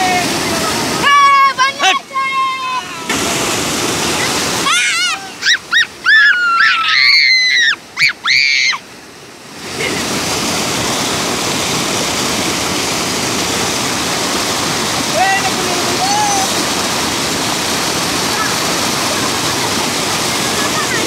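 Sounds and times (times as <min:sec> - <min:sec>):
floodwater rushing into pond: 0:00.0 - 0:21.0
person calling out: 0:15.2 - 0:16.6.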